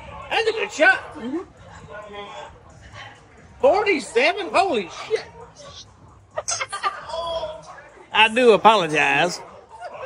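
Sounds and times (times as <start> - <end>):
breathy snickering laughs: 6.3 - 7.1.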